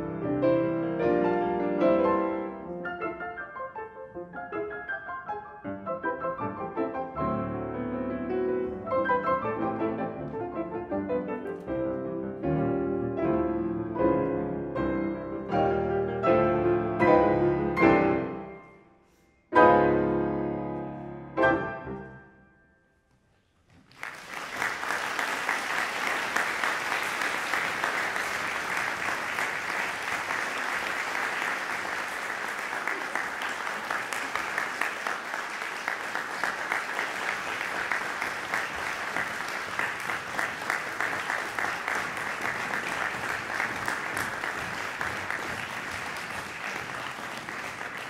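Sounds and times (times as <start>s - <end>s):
audience applauding in a hall: 23.6s - 48.0s.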